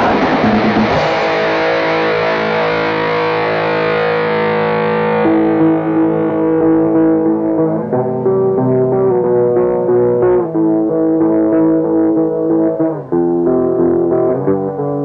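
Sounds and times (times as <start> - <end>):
distorted electric guitar: 0.0 - 15.0.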